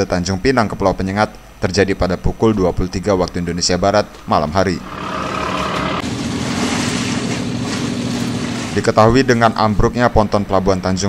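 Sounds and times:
engine humming steadily: 4.8 - 9.0.

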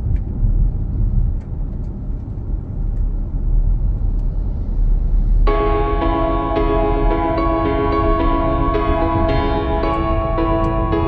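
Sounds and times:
car road noise rumble: 0.0 - 11.0
calm ambient music: 5.5 - 11.0.

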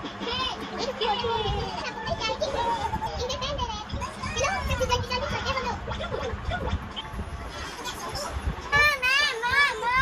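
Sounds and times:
children chattering and calling: 0.0 - 6.4, 7.7 - 10.0.

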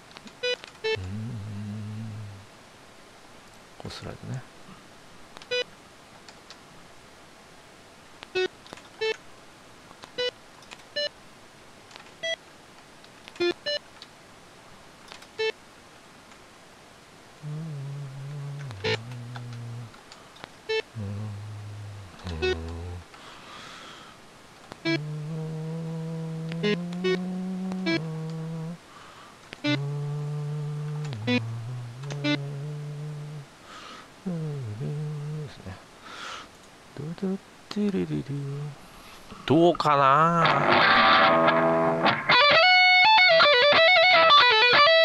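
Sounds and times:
long low held notes: 1.0 - 2.5, 17.4 - 20.0, 21.0 - 23.0, 24.8 - 28.8, 29.6 - 33.5, 34.2 - 35.7
short software note blips: 29.6 - 33.4.

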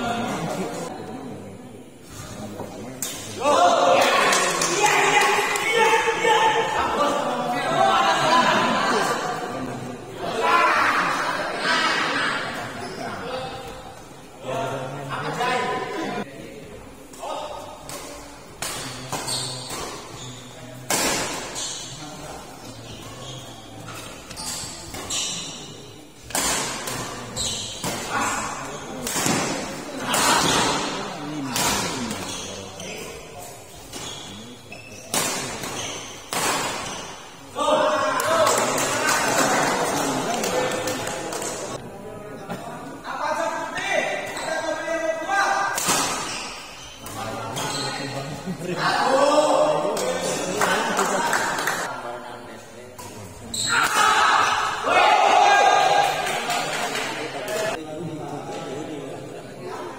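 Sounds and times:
rackets hitting shuttlecock: 26.3 - 28.1.

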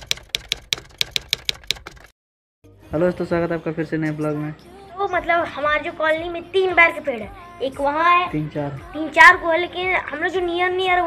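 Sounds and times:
typewriter key clicks: 0.0 - 2.1.

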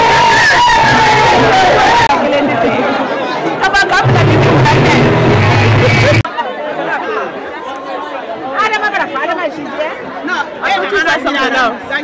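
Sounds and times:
people chattering: 0.0 - 12.0
deep bass sound: 4.0 - 6.2.

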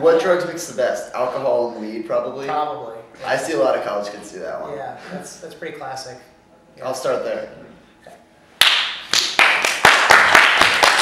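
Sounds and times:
hand clapping: 8.6 - 11.0.

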